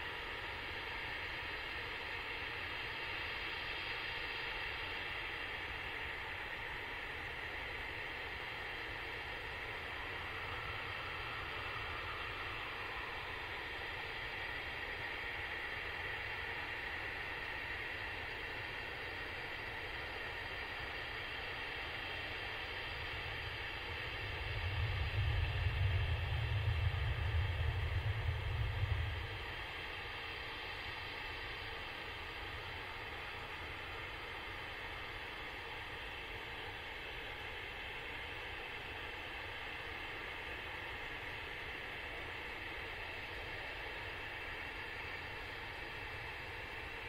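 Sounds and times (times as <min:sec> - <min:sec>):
low rumble: 0:24.2 - 0:29.9.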